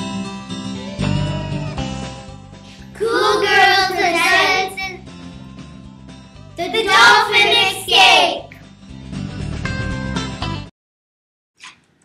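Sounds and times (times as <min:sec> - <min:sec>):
background music: 0:00.0 - 0:10.7
child singing: 0:03.0 - 0:05.0, 0:06.6 - 0:08.5.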